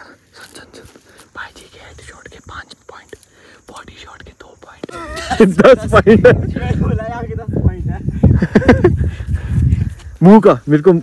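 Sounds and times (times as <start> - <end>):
whispering and low voices: 0.0 - 4.9.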